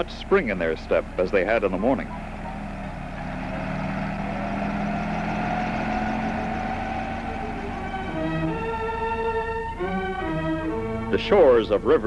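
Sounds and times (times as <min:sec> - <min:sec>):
helicopter engine running: 0:00.0 - 0:11.8.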